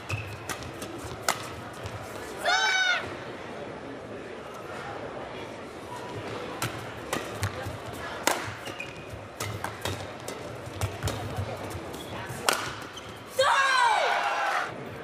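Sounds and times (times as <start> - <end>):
rackets hitting shuttlecock: 0.0 - 2.3, 6.2 - 13.3.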